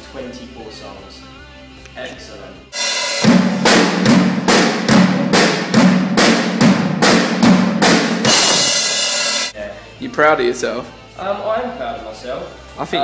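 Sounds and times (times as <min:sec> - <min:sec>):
drum kit played hard: 0:02.7 - 0:09.6
cymbal crash: 0:02.8 - 0:09.6.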